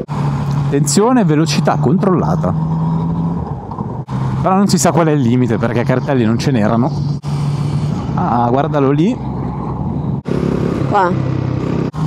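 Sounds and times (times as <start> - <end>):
motorcycle engine running: 5.9 - 12.0.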